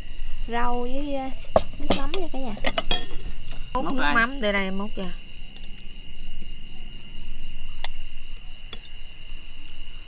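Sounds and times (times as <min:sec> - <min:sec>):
insects chirping: 0:00.0 - 0:10.0
spoon clinking on ceramic bowl: 0:01.6 - 0:03.2.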